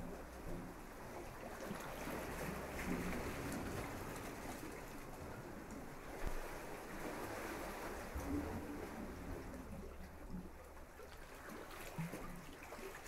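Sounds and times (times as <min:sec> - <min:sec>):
waves washing onto beach: 0:00.0 - 0:10.3.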